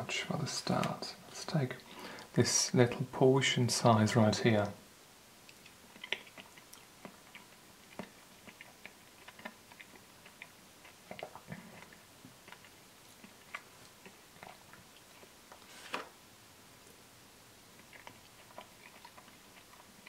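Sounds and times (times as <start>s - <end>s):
mouth clicks and lip smacks: 5.4s - 15.4s.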